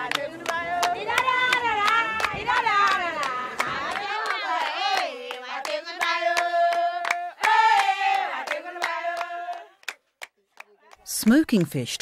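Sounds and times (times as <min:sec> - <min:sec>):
women singing together: 0:00.0 - 0:10.0
hand clapping: 0:00.0 - 0:11.8.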